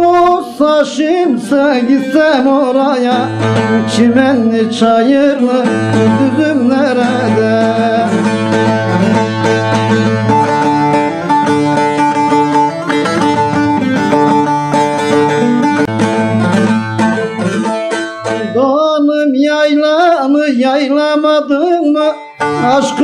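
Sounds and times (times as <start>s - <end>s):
saz plucked rapidly: 0.0s - 20.4s, 21.8s - 23.0s
man singing: 0.0s - 23.0s.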